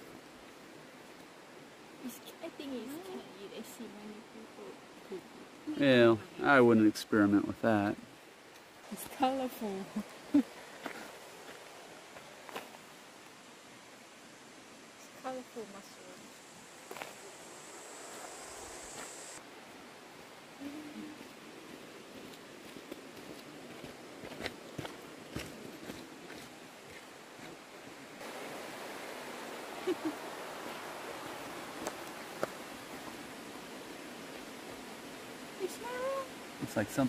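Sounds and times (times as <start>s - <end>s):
steady rushing noise: 16.4s - 19.4s.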